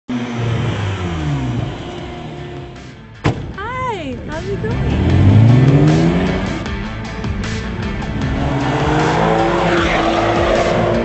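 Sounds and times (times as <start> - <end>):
car engine slowing down: 0.1 - 11.0.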